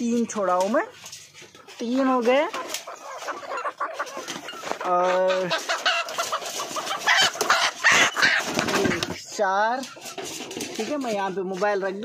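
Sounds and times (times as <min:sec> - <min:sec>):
chicks clucking and squawking: 0:00.0 - 0:12.0
rustling and knocking from handling: 0:09.9 - 0:11.0.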